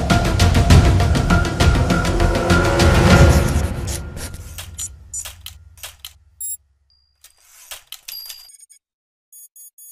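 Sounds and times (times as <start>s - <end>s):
background music drone: 0.0s - 5.9s
thin high beep: 6.4s - 8.8s
quick clicks and swishes: 7.2s - 8.8s.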